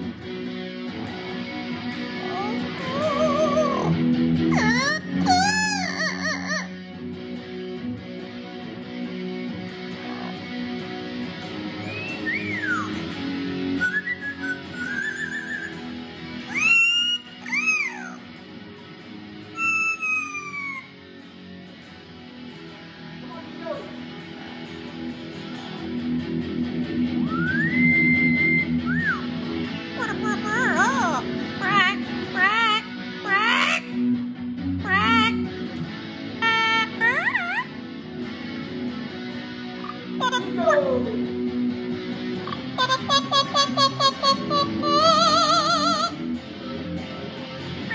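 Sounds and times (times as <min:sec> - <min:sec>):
electric guitar playing: 0:00.0 - 0:47.9
parrot whistling and calling: 0:02.3 - 0:06.8, 0:11.8 - 0:13.1, 0:13.8 - 0:15.9, 0:16.5 - 0:18.2, 0:19.6 - 0:21.0, 0:27.3 - 0:29.3, 0:30.0 - 0:31.1, 0:36.4 - 0:37.7, 0:42.8 - 0:46.2.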